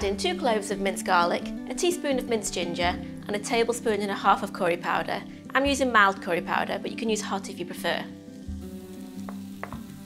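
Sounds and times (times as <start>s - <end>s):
soft background music: 0.0s - 10.0s
onion frying in oil: 7.6s - 10.0s.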